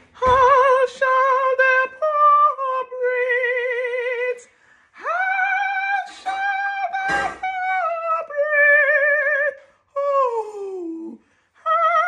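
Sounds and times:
woman singing soprano: 0.1s - 12.0s.

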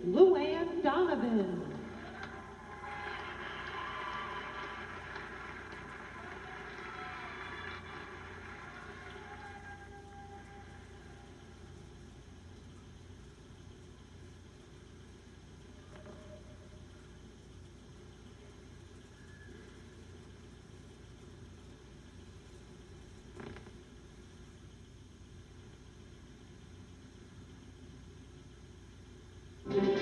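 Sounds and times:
faint hum and hiss: 0.0s - 30.0s.

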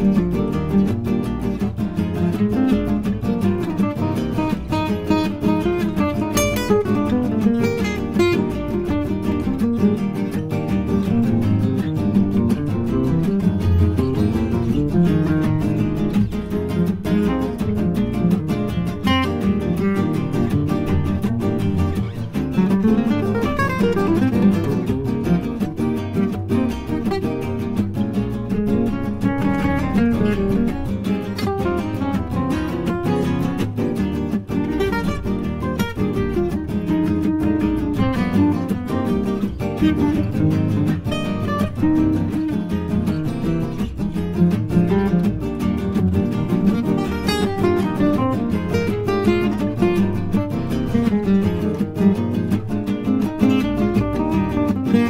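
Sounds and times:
acoustic guitar strumming: 0.0s - 55.0s
swing jazz: 0.0s - 55.0s.

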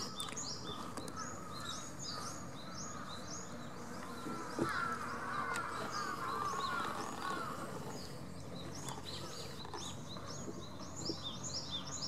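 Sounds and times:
small birds chirping: 0.0s - 12.0s
steady background hum: 0.0s - 12.0s.

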